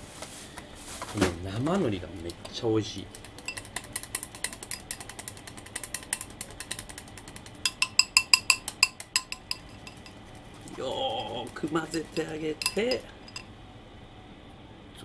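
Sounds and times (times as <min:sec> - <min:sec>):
chopsticks clicking in glass bowl: 0:02.2 - 0:10.2, 0:11.4 - 0:13.5.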